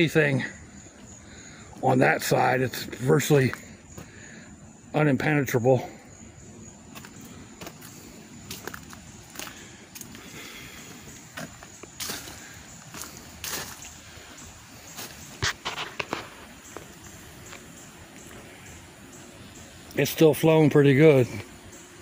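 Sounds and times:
footsteps on leaf litter: 6.9 - 18.5.

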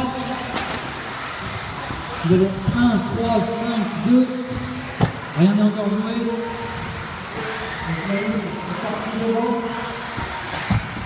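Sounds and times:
toy car motors and tyres rushing: 0.0 - 11.0.

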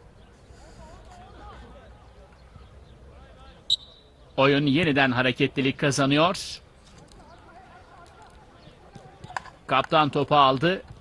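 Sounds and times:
faint voices: 0.2 - 4.4
referee's whistle blast: 3.7 - 4.1.

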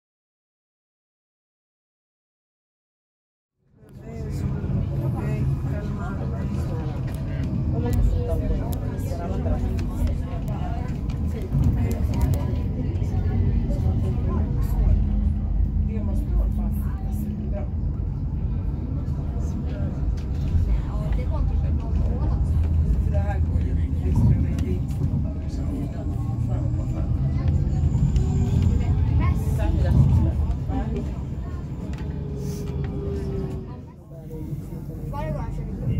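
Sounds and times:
tram rumbling: 3.9 - 35.9.

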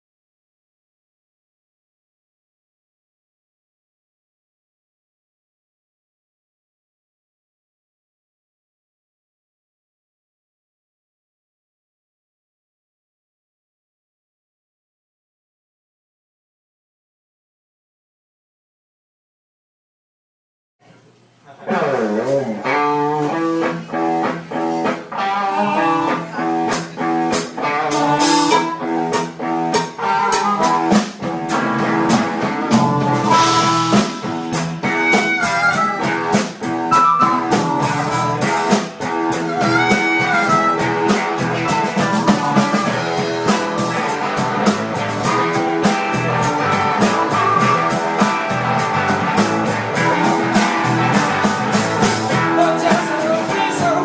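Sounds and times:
blues-rock band playing: 21.7 - 54.0
harmonica: 25.2 - 26.2, 27.6 - 54.0.

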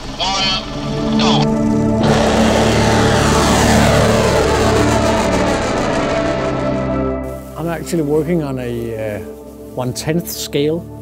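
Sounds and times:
rocket motor roaring: 0.0 - 7.6.

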